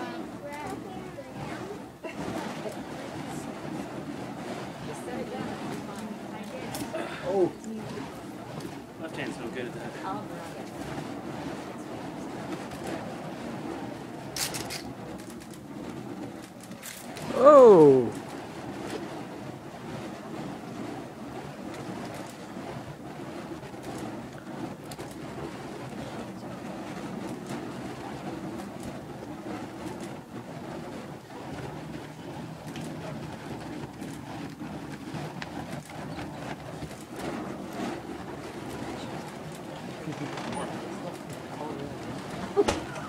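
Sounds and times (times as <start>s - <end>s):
fire poi whooshing: 0.0s - 43.0s.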